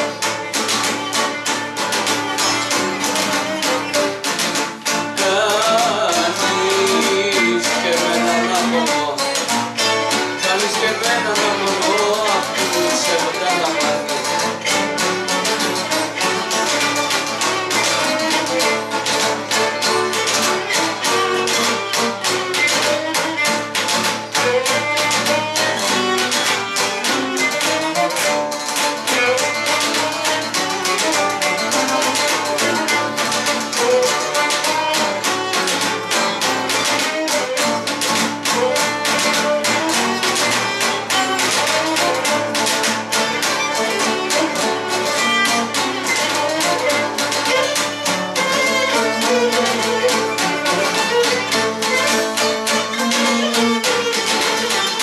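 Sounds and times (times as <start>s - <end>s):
bowed lyra melody: 0.0s - 55.0s
rhythmic lute strumming: 0.0s - 55.0s.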